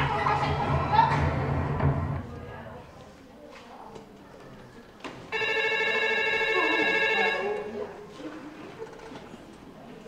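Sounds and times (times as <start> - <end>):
telephone ringing: 5.3 - 7.7.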